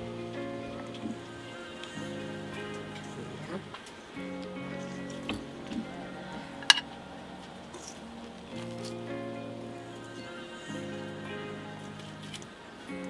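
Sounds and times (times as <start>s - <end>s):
background music with chords: 0.0s - 13.0s.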